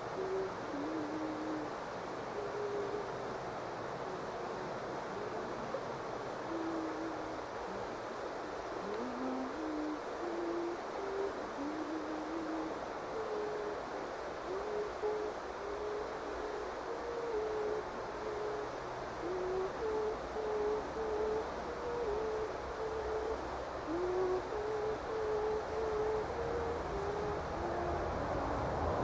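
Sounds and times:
background hiss: 0.0s - 29.0s.

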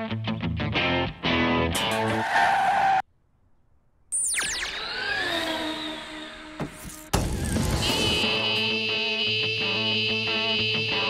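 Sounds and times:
tire screech sound effect: 1.8s - 3.0s, 4.2s - 8.4s.

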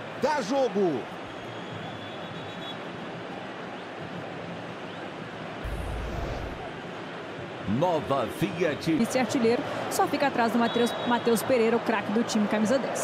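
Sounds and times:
stadium crowd din: 0.0s - 13.0s
low rumble: 5.6s - 6.7s.

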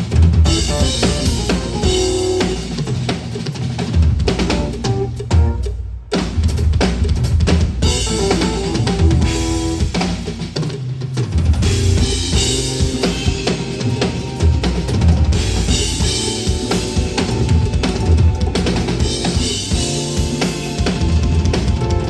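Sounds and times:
drum kit groove: 0.0s - 22.0s.

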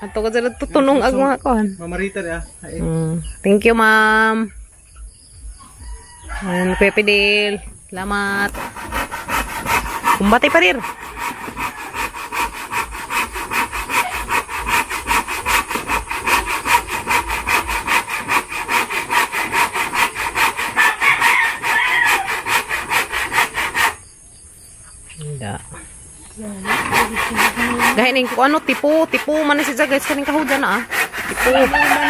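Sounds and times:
hand saw cutting wood: 8.0s - 24.0s, 26.6s - 32.0s.

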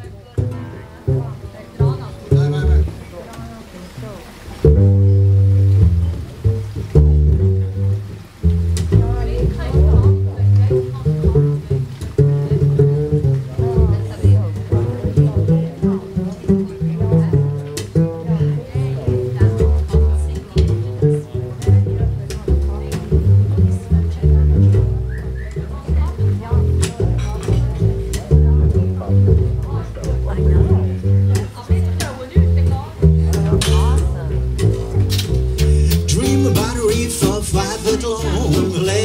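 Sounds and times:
cajon beats: 0.0s - 39.0s
plucked double bass: 0.0s - 39.0s
resonator guitar: 0.0s - 39.0s
guitar strumming: 33.6s - 39.0s.

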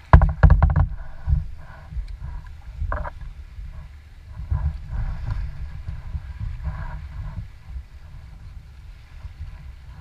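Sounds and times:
waves slapping a kayak hull: 0.0s - 10.0s.

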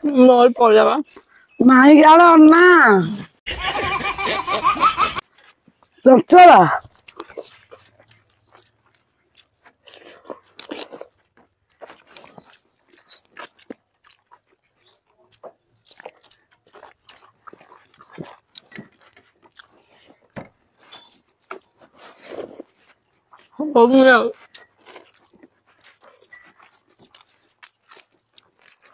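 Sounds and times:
soft chewing and mouth smacks: 0.6s - 1.6s, 5.2s - 6.0s, 6.8s - 28.9s.

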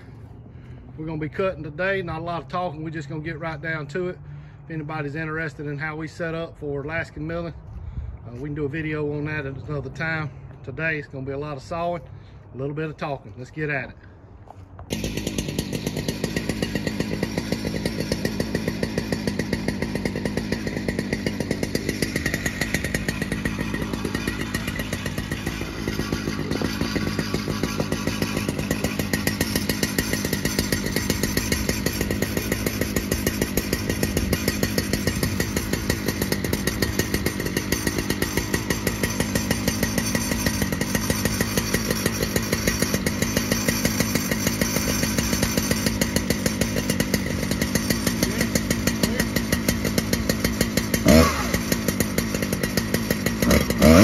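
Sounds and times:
chainsaw running: 0.0s - 54.0s.

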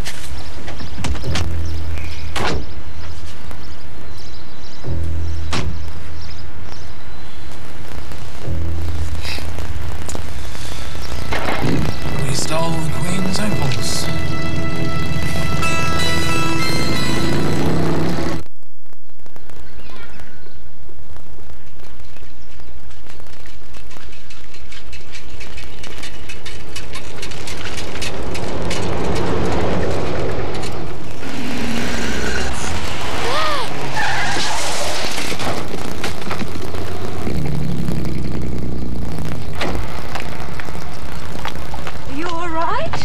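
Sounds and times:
film soundtrack music: 0.5s - 18.4s
cars going by: 27.0s - 35.8s.

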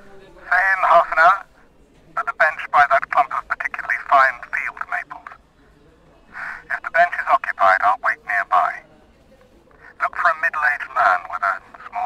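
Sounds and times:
voices over a phone line: 0.3s - 5.5s, 6.2s - 12.0s.

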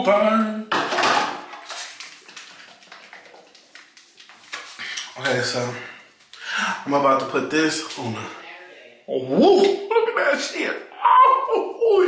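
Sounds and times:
plastic bottle rattling when shaken: 0.7s - 4.8s.

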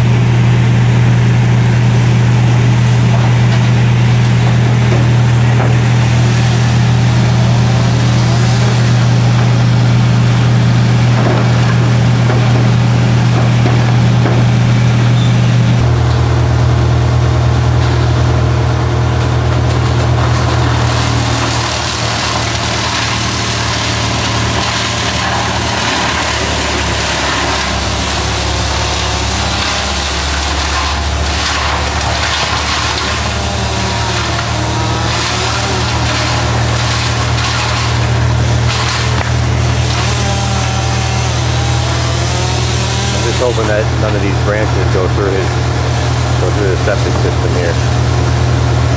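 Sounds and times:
large diesel engine idling: 0.0s - 21.2s.

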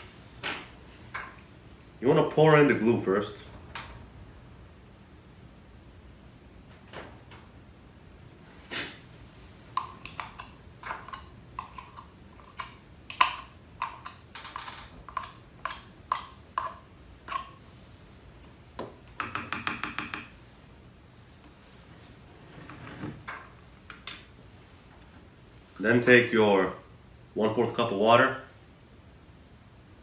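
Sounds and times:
plastic spoon scraping and tapping cup: 9.7s - 17.5s.

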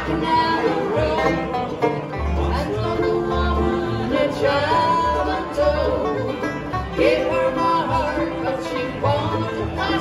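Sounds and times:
acoustic guitar: 0.0s - 10.0s
banjo picking: 0.0s - 10.0s
mandolin picking: 0.0s - 10.0s
upright double bass notes: 0.0s - 10.0s.

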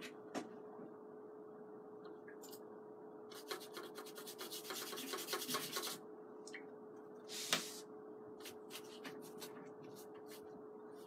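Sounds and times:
paintbrush scrubbing paper: 3.4s - 6.0s.

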